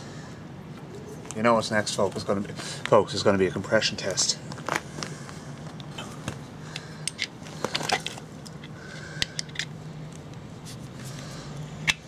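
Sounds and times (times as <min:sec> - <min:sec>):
steady low hum: 0:00.0 - 0:12.0
clicks taps and scrapes of tools: 0:06.8 - 0:09.7.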